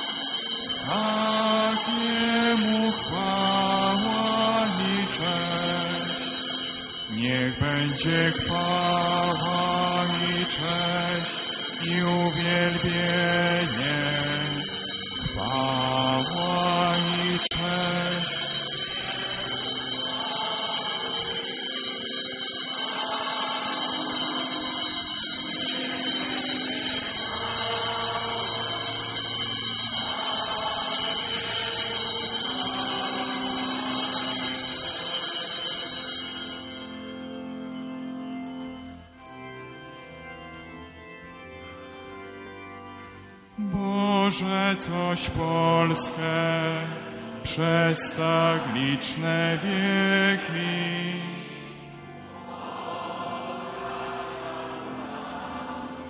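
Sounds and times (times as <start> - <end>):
church organ chords: 0.0 - 56.0.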